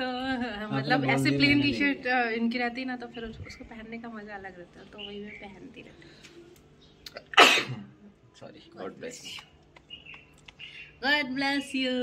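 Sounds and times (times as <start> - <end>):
man sneezing loudly: 7.3 - 7.9.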